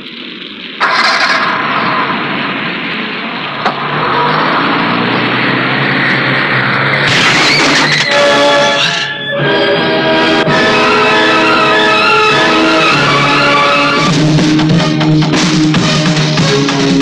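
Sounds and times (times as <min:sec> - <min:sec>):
heavy rain pouring: 0:00.0 - 0:17.0
car engine starting and driving off: 0:00.6 - 0:11.6.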